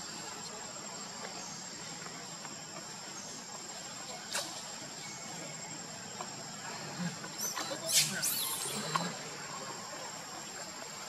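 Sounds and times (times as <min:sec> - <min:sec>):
insects chorus: 0:00.0 - 0:11.0.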